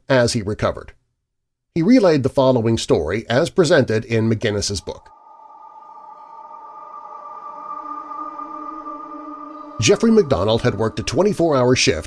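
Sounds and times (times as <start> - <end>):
ambient drone music: 5.0 - 12.0.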